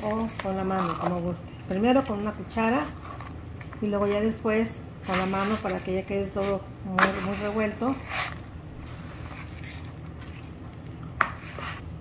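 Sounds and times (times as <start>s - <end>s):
spoon stirring wet meat mixture: 5.0s - 11.8s.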